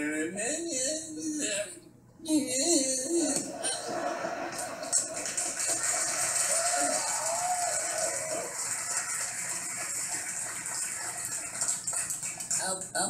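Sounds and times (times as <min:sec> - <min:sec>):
people laughing: 0:03.4 - 0:11.5
audience clapping: 0:04.5 - 0:12.8.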